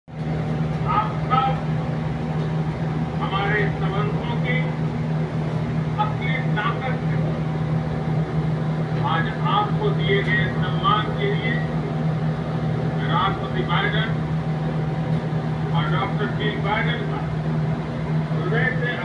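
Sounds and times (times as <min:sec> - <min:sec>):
steady low hum: 0:00.1 - 0:19.0
television speech: 0:06.0 - 0:07.3, 0:13.0 - 0:14.2, 0:15.7 - 0:17.3, 0:18.4 - 0:19.0.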